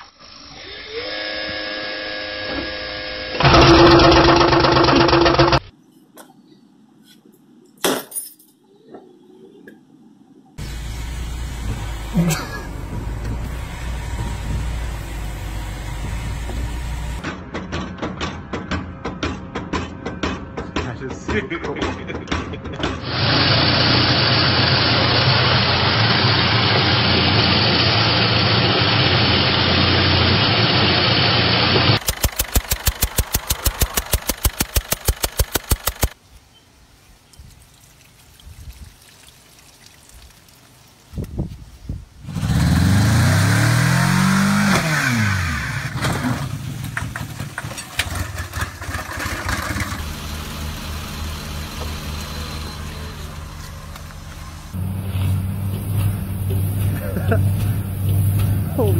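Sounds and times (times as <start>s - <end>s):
engine revving and idling: 10.6s - 17.2s, 23.0s - 36.2s, 42.2s - 58.9s
engine running steadily: 10.6s - 17.4s, 23.0s - 36.2s, 44.0s - 58.9s.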